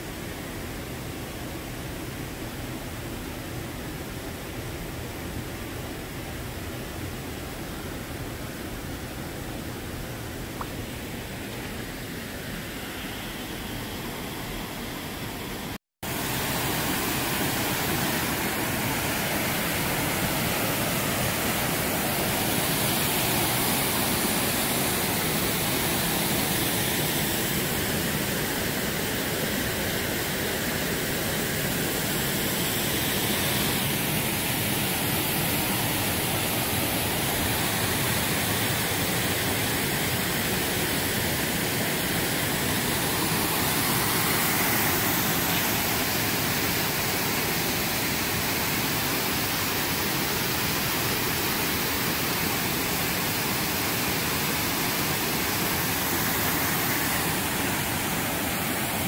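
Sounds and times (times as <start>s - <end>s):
stream rushing over rocks: 0.0s - 59.0s.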